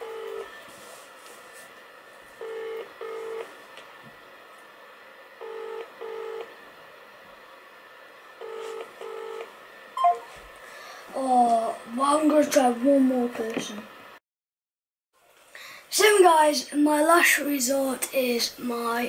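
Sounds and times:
phone ringback tone: 0:00.0 - 0:00.5, 0:02.4 - 0:03.5, 0:05.4 - 0:06.5, 0:08.4 - 0:10.3.

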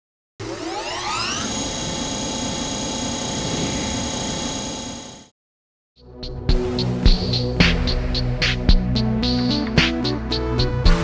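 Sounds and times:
drill motor whine: 0:00.4 - 0:05.3.

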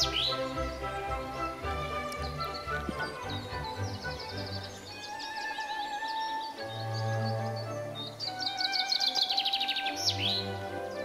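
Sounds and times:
background music with held notes: 0:00.0 - 0:11.0
songbird singing: 0:00.0 - 0:11.0.

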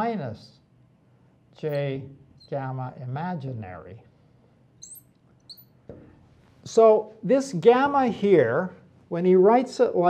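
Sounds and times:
marker squeaking on glass: 0:01.6 - 0:02.6, 0:04.8 - 0:05.8.

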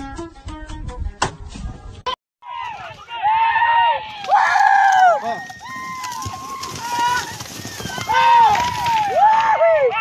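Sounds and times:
people yelling high shouts: 0:02.4 - 0:10.0
horses galloping on dirt: 0:02.5 - 0:10.0.

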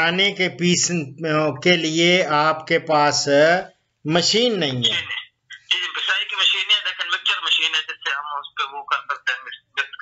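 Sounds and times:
voice over telephone line: 0:04.3 - 0:10.0.

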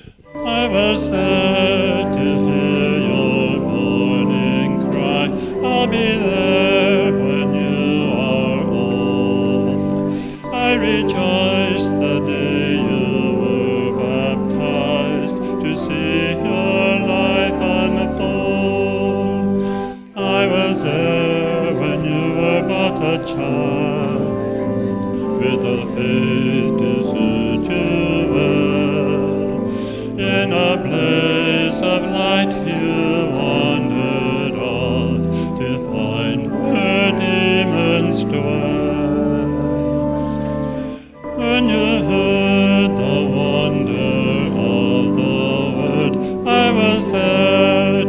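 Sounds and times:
church organ chords: 0:00.0 - 0:48.0
steady held notes: 0:00.0 - 0:48.0
voices singing a hymn: 0:00.0 - 0:48.0.

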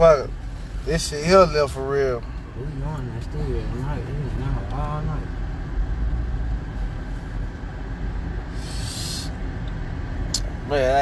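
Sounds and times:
car cabin road and engine rumble: 0:00.0 - 0:11.0
brief hiss: 0:08.5 - 0:09.4.

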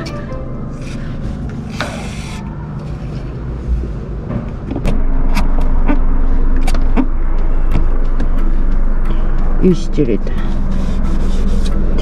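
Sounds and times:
low vehicle rumble: 0:00.0 - 0:12.0.

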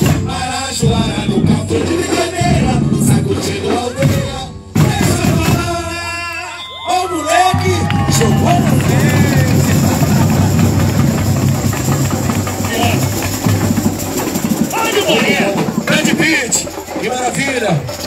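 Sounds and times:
samba drums playing: 0:00.0 - 0:06.2, 0:07.5 - 0:18.0
voices: 0:00.0 - 0:18.0.

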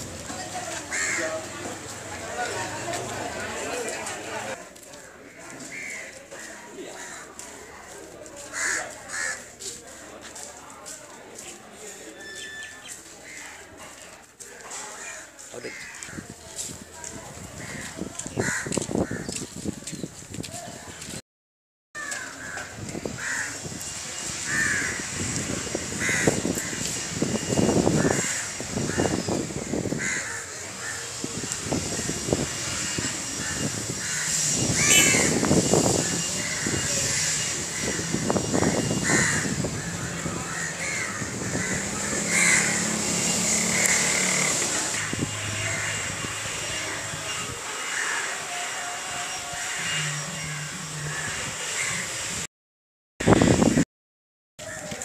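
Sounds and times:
crows cawing: 0:00.8 - 0:01.5, 0:05.0 - 0:07.6, 0:08.5 - 0:10.1, 0:15.0 - 0:16.2, 0:17.6 - 0:19.3, 0:22.0 - 0:23.6, 0:24.5 - 0:25.2, 0:25.8 - 0:27.0, 0:27.9 - 0:31.2, 0:32.7 - 0:35.4, 0:36.0 - 0:44.3, 0:45.0 - 0:46.1, 0:47.8 - 0:48.5, 0:49.6 - 0:52.1.

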